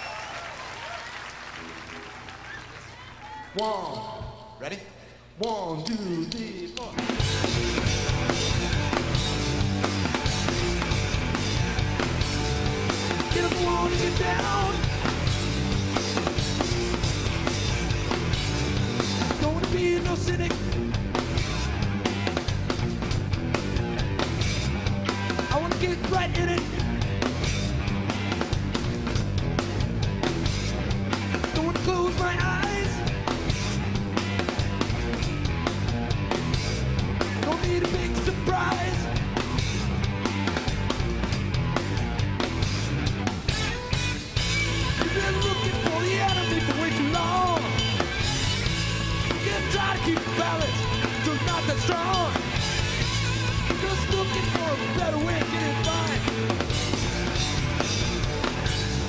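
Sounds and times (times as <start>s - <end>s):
drum kit beat: 5.4s - 59.0s
rock band playing live: 6.2s - 59.0s.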